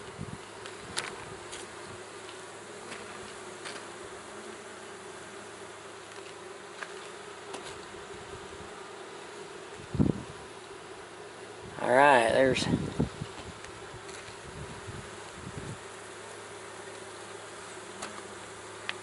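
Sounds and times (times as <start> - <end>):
bees buzzing: 0.0 - 19.0.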